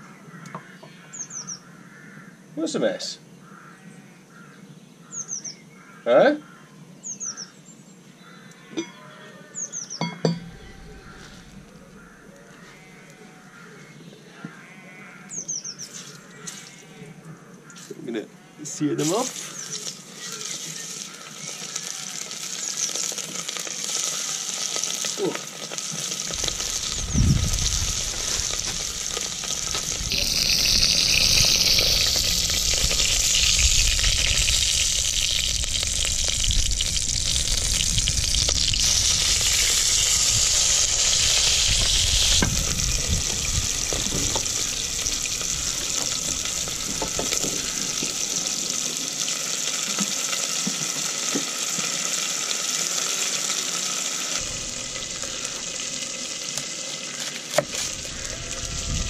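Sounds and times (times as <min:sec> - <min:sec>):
meat sizzling in hot oil: 0:19.0 - 0:59.0.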